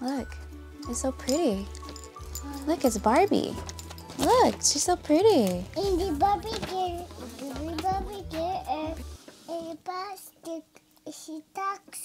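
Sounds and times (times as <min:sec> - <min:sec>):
toddler sing-song voice: 0:05.8 - 0:12.0.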